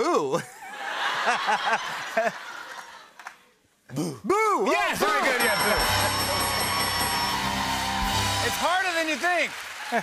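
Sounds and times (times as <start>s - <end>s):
group laughing: 0.6s - 3.2s.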